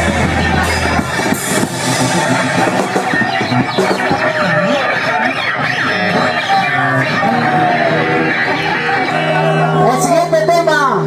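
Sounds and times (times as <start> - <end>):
punk band playing live: 0.0 - 11.0
shouted vocals: 2.4 - 11.0.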